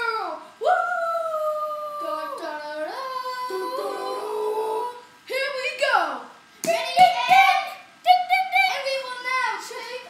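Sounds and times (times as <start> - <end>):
girl singing howl-like notes: 0.0 - 5.6.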